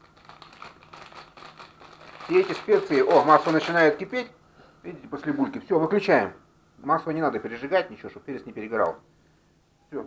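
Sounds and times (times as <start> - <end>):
paper packet rustling: 0.0 - 4.2.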